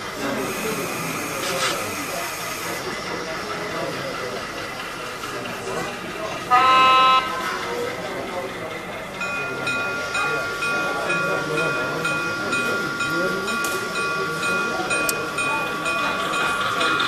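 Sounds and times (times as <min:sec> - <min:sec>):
locomotive bell ringing: 0:06.2 - 0:17.0
locomotive horn blast: 0:06.5 - 0:07.6.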